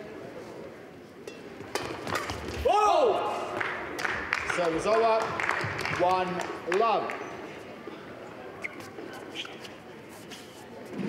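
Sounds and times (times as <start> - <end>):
indoor hall background: 0.0 - 11.0
racket striking shuttlecock: 1.3 - 2.6.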